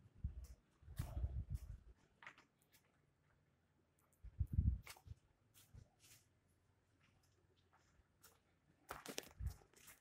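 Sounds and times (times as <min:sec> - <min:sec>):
footsteps on paving: 0:04.8 - 0:10.0.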